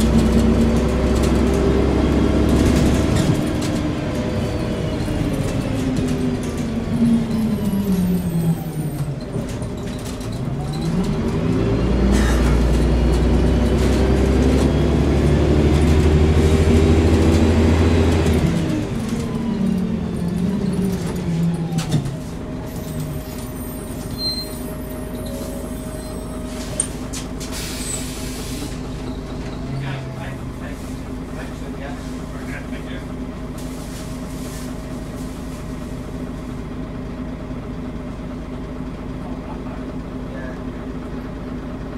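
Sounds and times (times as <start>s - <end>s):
bus diesel engine droning: 0.0s - 41.9s.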